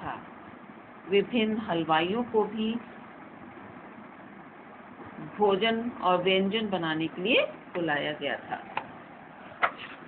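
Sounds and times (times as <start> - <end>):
steady background hiss: 0.0 - 10.0.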